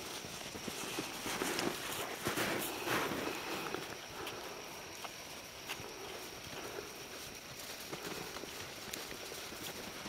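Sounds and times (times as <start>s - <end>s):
footsteps crunching in snow: 0.0s - 10.0s.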